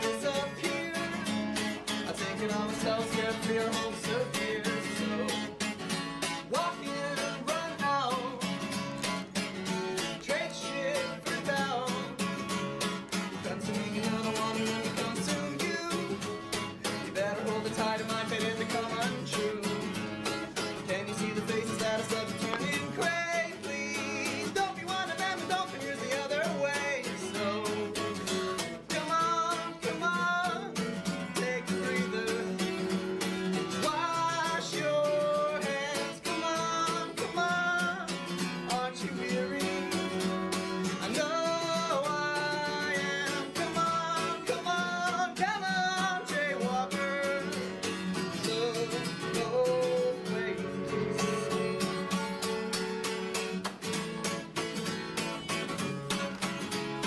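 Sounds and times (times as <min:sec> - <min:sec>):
guitar strumming: 0:00.0 - 0:57.0.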